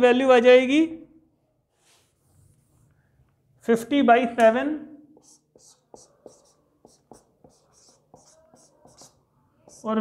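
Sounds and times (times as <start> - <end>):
marker squeaking on whiteboard: 5.2 - 10.0.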